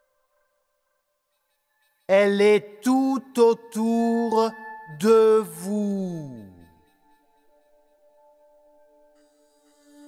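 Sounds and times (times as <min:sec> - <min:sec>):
faint ringing tones: 0:00.0 - 0:10.0.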